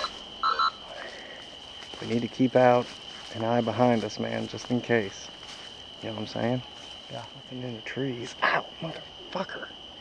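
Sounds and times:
night insects droning: 0:00.0 - 0:10.0.

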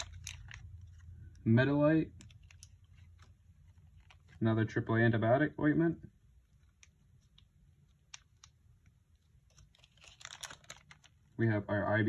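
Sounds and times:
foil packet crinkling: 0:00.0 - 0:04.5, 0:06.4 - 0:11.4.

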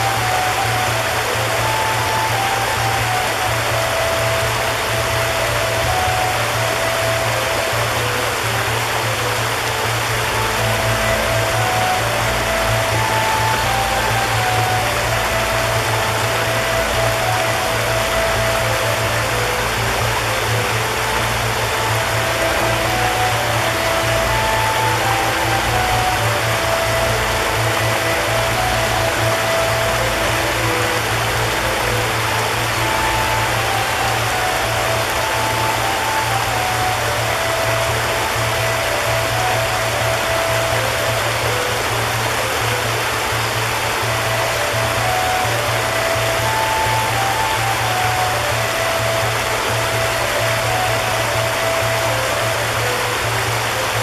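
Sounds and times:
gentle melody of held notes: 0:00.0 - 0:54.0
low sustained drone: 0:00.0 - 0:54.0
stream running over rocks: 0:00.0 - 0:54.0.

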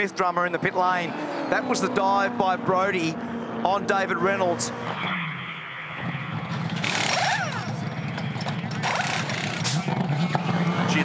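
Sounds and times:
car engine running: 0:05.9 - 0:11.0
pneumatic wheel guns rattling: 0:06.8 - 0:10.1.

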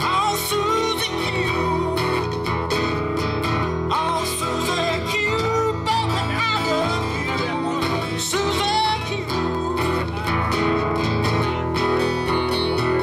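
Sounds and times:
bass line: 0:00.0 - 0:13.0
electric guitar lead: 0:00.0 - 0:13.0
strummed acoustic guitar: 0:00.0 - 0:13.0.

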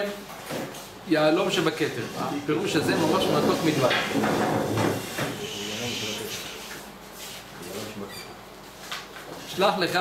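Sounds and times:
man speaking: 0:01.2 - 0:04.0.

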